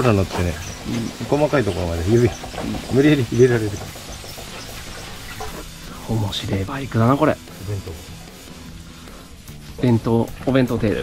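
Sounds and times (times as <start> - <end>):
wash glove rubbing soapy foam: 0.0 - 10.1.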